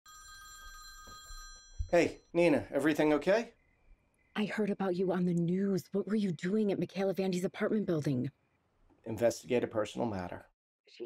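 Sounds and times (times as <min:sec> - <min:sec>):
mobile phone ringing: 0:00.1 - 0:02.2.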